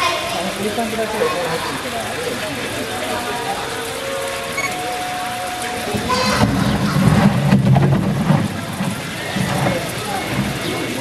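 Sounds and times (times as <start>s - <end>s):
crowd voices: 0.0s - 11.0s
low rumbling noise: 3.8s - 11.0s.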